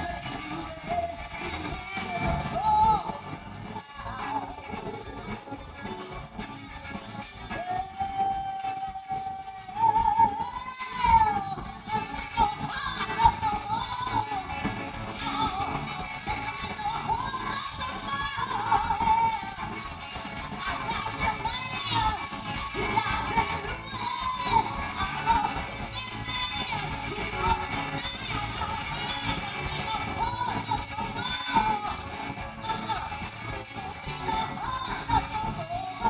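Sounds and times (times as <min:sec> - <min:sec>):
electric guitar lead melody: 0:00.0 - 0:36.0
live blues band playing: 0:00.0 - 0:36.0.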